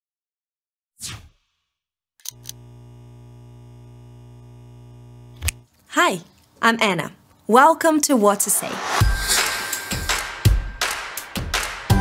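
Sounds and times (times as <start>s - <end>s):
sharp electrical clicks: 2.2s - 5.7s
low electrical hum: 2.3s - 6.5s.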